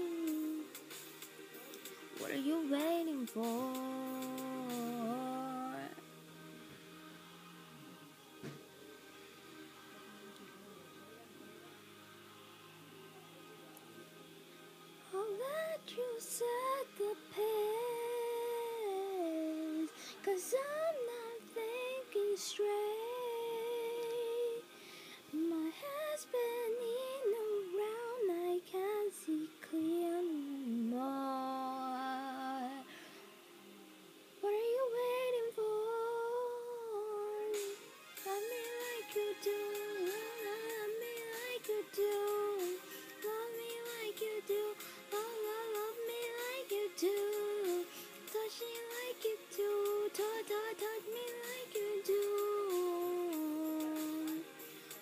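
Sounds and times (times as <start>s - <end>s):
young woman singing pop ballad: 0.0s - 1.0s, 2.2s - 6.0s, 15.1s - 24.6s, 25.3s - 33.1s, 34.4s - 55.0s.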